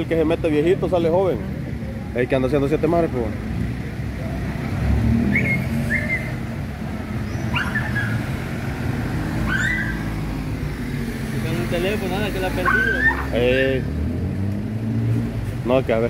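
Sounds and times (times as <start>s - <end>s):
street traffic rumble: 0.0s - 16.0s
dog yelping: 5.3s - 6.4s, 7.4s - 8.4s, 9.4s - 10.2s, 12.6s - 13.4s.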